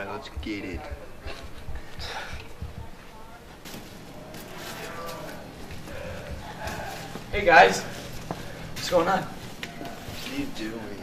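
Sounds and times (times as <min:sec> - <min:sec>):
quiet indistinct voices talking: 0:00.0 - 0:11.0.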